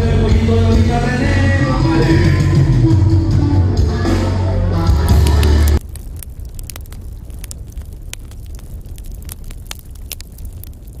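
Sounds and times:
live band music with deep bass: 0.0s - 5.8s
low rumble: 4.8s - 11.0s
sharp clicks and crackles: 5.2s - 11.0s.

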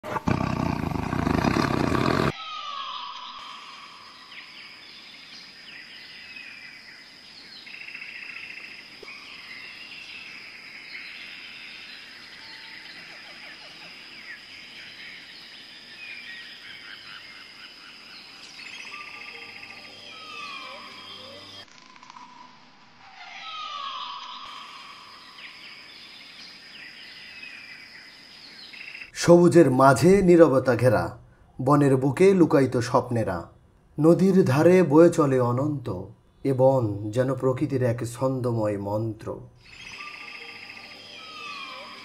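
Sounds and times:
birds chirping and calling: 0.2s - 21.7s, 39.6s - 42.0s
high-pitched insect drone: 39.7s - 42.0s.

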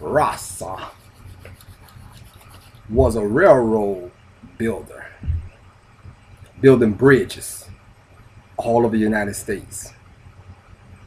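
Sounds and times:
low steady hum: 0.0s - 11.0s
faint rubbing: 0.2s - 3.4s.

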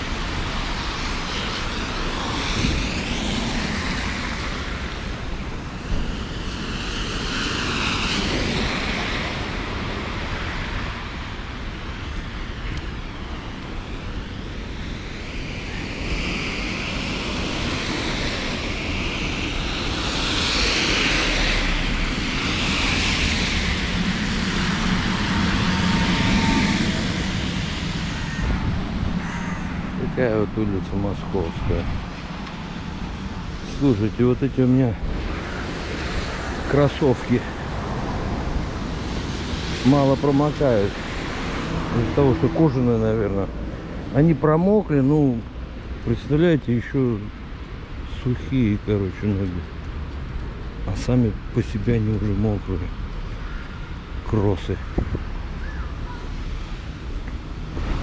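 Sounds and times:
wind and rain on microphone: 0.0s - 58.0s
car tyres hissing on wet road: 19.4s - 28.3s.

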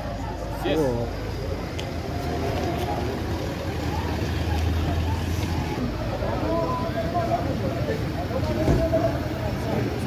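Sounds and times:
car engines low rumble: 0.0s - 10.0s.

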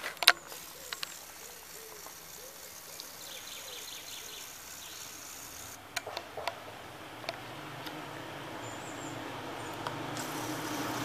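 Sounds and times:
faint bird calls: 0.0s - 6.7s
soft steady hiss: 0.0s - 8.5s.

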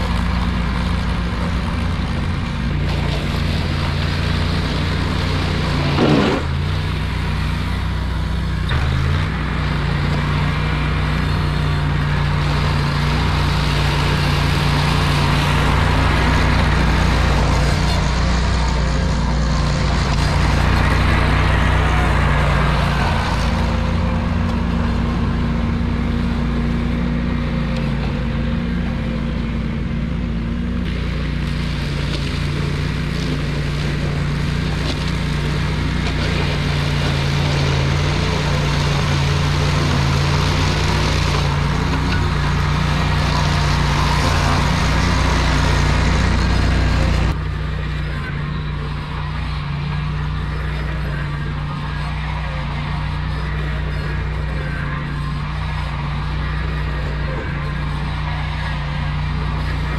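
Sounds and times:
mower cutting tall grass: 0.0s - 59.9s
tractor engine running: 0.0s - 59.9s.

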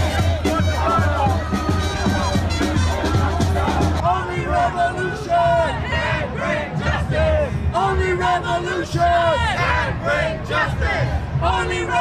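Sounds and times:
crowd shouting a chant: 0.0s - 12.0s.

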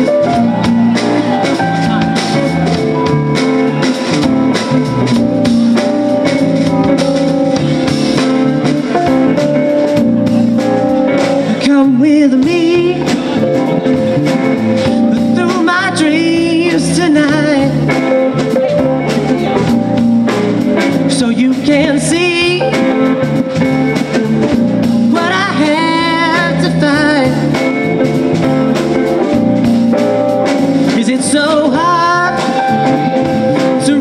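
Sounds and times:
bass guitar: 0.0s - 34.0s
drum kit: 0.0s - 34.0s
electric guitar: 0.0s - 34.0s
keyboard: 0.0s - 34.0s
wavering lead melody: 0.0s - 34.0s.

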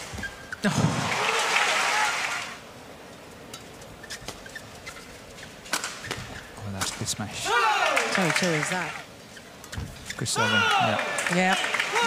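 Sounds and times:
crowd cheering: 0.8s - 2.6s, 7.4s - 9.1s, 10.3s - 12.0s.

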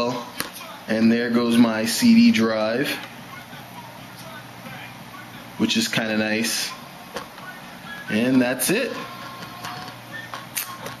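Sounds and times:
computer hardware humming: 0.0s - 11.0s.

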